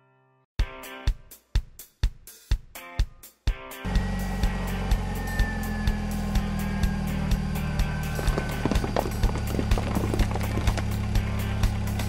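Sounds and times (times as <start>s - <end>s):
background music with drum beat: 0.6s - 12.0s
car engine hum: 3.9s - 12.0s.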